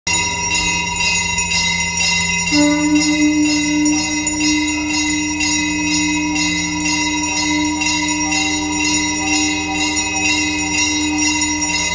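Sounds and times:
temple bell ringing: 0.1s - 11.9s.

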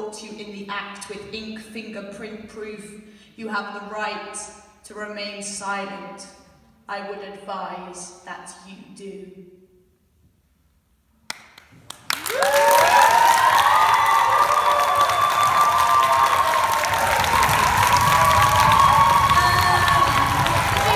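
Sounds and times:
audience applause and cheering: 11.8s - 20.9s
whoops and shouts: 12.2s - 20.9s.

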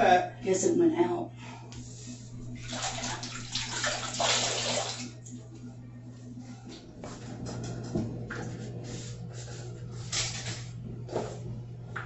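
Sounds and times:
water splashing in a sink: 2.5s - 5.3s.

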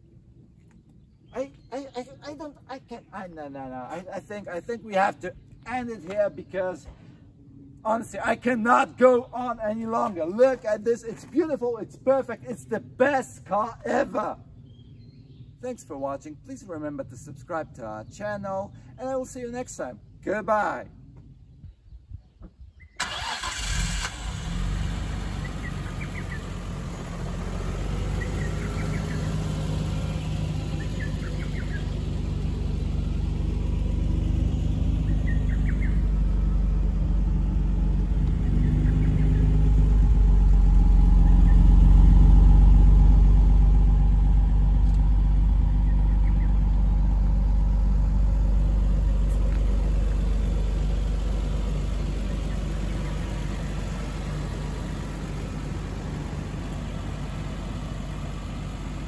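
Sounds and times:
car engine idling: 23.0s - 59.0s
car engine starting: 23.0s - 59.0s.

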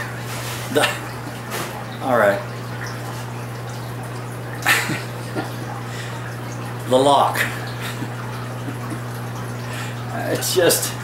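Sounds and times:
faint trickling water: 0.0s - 11.0s
steady low hum: 0.0s - 11.0s.

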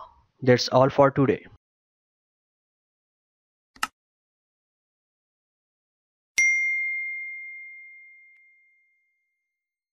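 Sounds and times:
bell-like ding: 6.4s - 9.5s.

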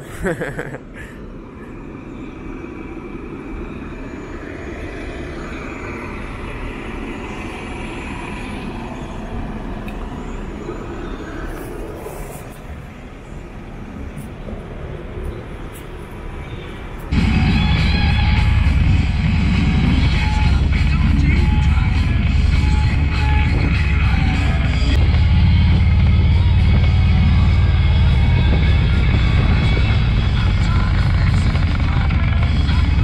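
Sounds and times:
cars and buses passing: 0.0s - 33.0s
loud music: 17.1s - 33.0s.

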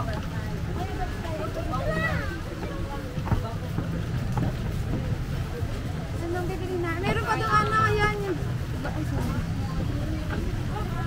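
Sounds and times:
faint indistinct voices: 0.0s - 11.0s.

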